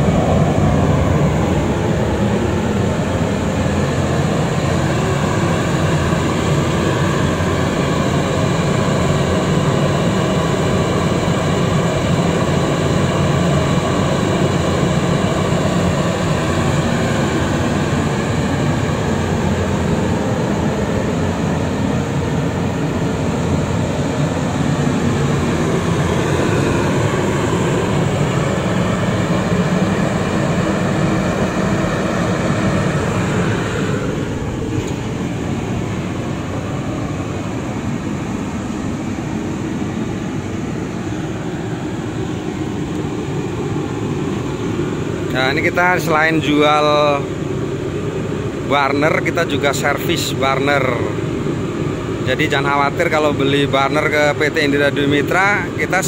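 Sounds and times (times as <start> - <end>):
oil burner roaring: 0.0 - 56.0.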